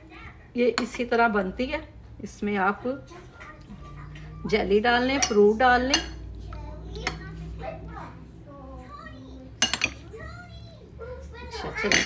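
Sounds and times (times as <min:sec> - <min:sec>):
faint children's voices: 0:00.0 - 0:00.6, 0:02.7 - 0:12.0
dishes and glassware clinking: 0:05.0 - 0:06.4, 0:09.6 - 0:10.0, 0:11.8 - 0:12.0.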